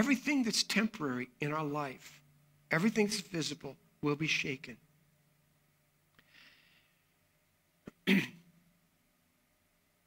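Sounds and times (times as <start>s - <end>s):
man clearing throat: 7.9s - 8.5s.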